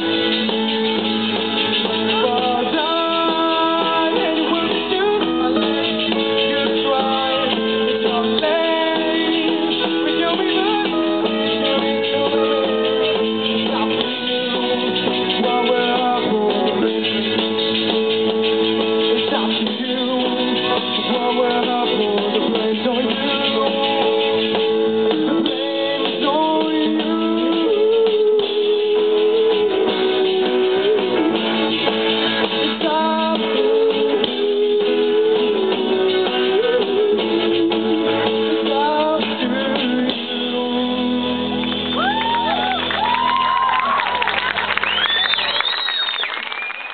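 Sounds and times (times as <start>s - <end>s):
bass: 0.0s - 46.9s
drums: 0.0s - 46.9s
electric guitars bending notes: 0.0s - 46.9s.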